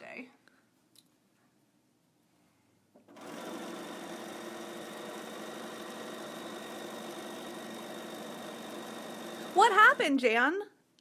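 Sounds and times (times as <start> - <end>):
sewing machine stitching: 3.1 - 10.3.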